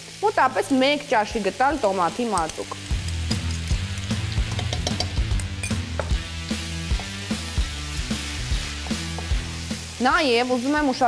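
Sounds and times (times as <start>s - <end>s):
vegetables sizzling in a frying pan: 0.0s - 11.0s
background music with bass: 2.8s - 10.0s.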